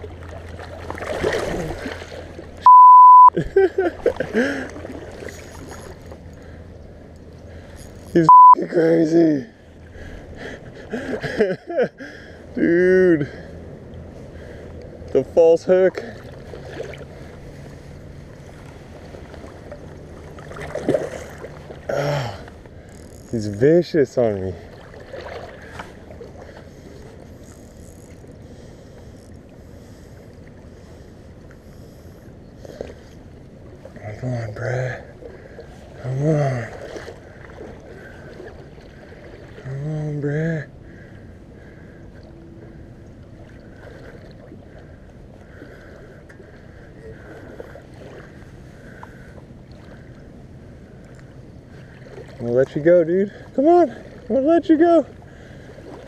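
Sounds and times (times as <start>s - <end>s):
river water rushing: 0.0s - 2.8s
river water: 0.0s - 56.0s
fishing reel whirring: 7.8s - 8.3s, 22.9s - 23.6s, 27.4s - 28.3s
faint ticks: 22.4s - 23.4s, 51.0s - 51.3s.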